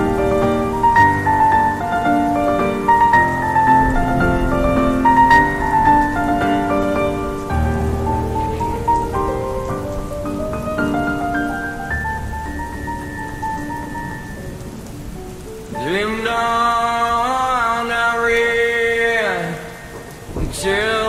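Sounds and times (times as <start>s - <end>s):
person singing: 0.0s - 9.9s, 15.7s - 21.0s
bass notes: 0.0s - 11.4s
rain-like hiss: 0.0s - 21.0s.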